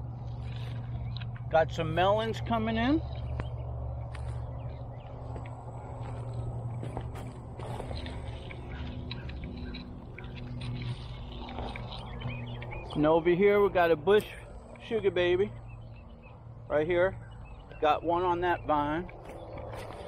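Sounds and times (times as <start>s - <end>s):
footsteps on wood-chip mulch: 0.0s - 20.0s
steady low hum: 0.0s - 20.0s.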